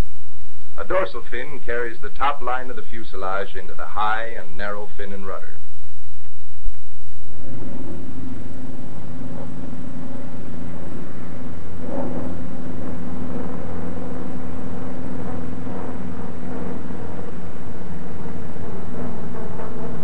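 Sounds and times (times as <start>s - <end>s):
radial piston aircraft engine droning: 0.0s - 20.0s.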